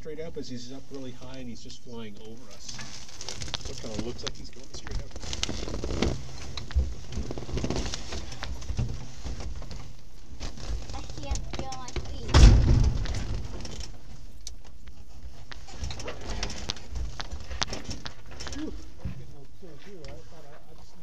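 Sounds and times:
light clicks and knocks: 6.0s - 20.2s
heavy rumbling thump: 10.7s - 14.1s.

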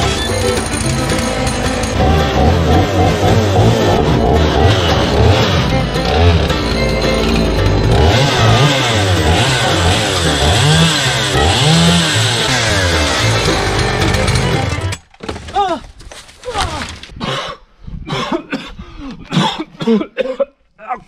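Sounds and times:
chainsaw revving and cutting: 0.8s - 14.9s.

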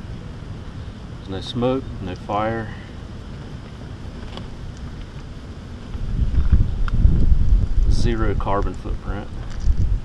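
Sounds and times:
wind buffeting microphone: 5.7s - 10.0s.

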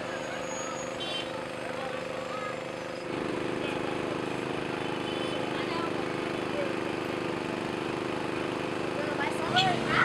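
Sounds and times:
engine running steadily: 0.0s - 10.0s.

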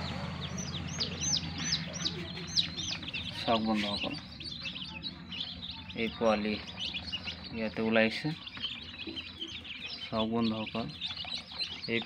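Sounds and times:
steady low hum: 0.0s - 11.7s
chicks peeping: 0.0s - 12.0s.

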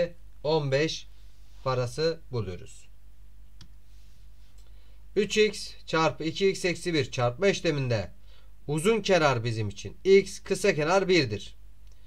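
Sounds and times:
low electrical hum: 0.0s - 12.0s
computer mouse click: 3.6s - 3.8s.

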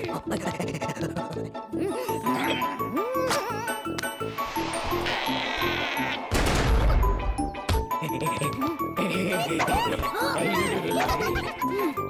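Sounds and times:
rhythmic background music: 0.0s - 4.4s, 6.3s - 12.0s.

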